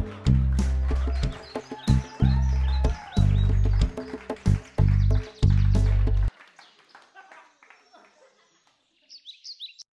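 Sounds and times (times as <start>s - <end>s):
small bird chirping: 8.6s - 9.9s.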